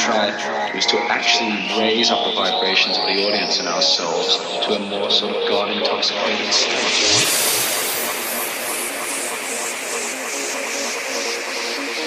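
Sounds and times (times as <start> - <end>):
pulsing hissing synth noise: 5.2 - 12.0.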